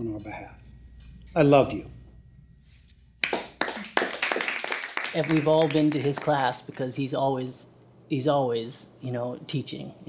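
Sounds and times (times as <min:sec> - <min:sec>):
group clapping: 0:03.2 - 0:07.0.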